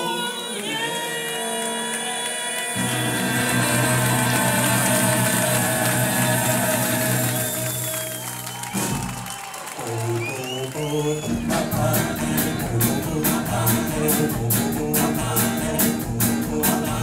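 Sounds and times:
vocal group singing: 0.0 - 8.2, 9.8 - 17.0
audience applause and cheering: 0.4 - 14.6
guitar playing: 2.8 - 7.6, 11.4 - 17.0
backing band playing: 2.8 - 17.0.

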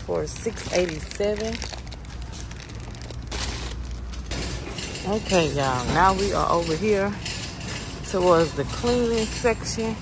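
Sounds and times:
plastic packs rustling: 0.0 - 9.8
shopping cart rattling: 0.0 - 10.0.

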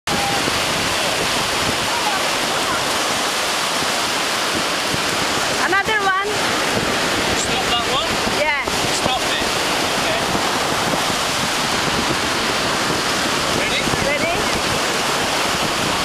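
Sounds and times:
ocean surf washing up beach: 0.1 - 16.0
wind buffeting microphone: 0.1 - 16.0.

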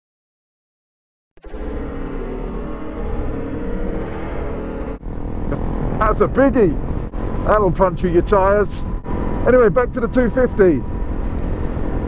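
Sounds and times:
dramatic music sting: 1.4 - 6.2.

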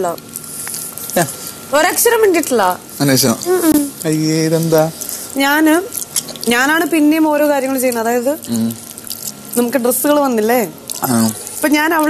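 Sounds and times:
woman talking: 0.0 - 0.2, 1.7 - 2.8, 3.5 - 4.0, 5.4 - 8.4, 9.6 - 12.0.

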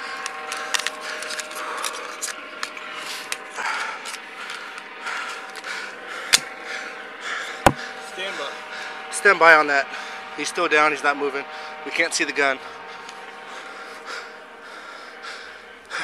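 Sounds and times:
steady multi-tone hum: 0.0 - 16.0.

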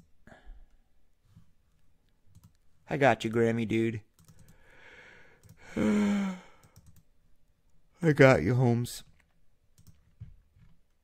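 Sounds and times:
man sighing: 4.7 - 6.7.

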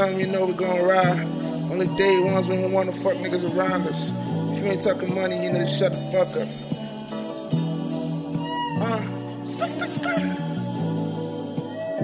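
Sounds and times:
vocal uh: 0.0 - 7.1, 8.4 - 10.8
bass line: 0.0 - 12.0.

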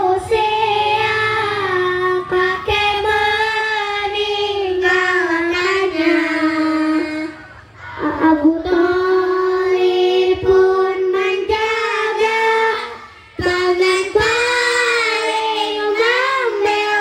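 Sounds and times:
children singing in unison: 0.0 - 17.0.

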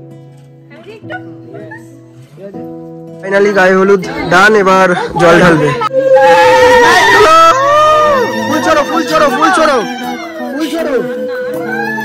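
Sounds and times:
women ululating: 5.4 - 12.0.

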